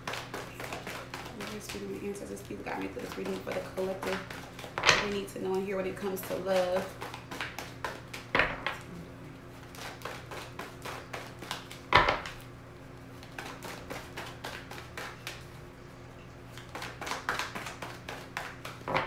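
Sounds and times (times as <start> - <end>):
deck knocked on wooden table: 8.3 - 8.8, 11.9 - 12.2
cards being shuffled: 9.6 - 12.5.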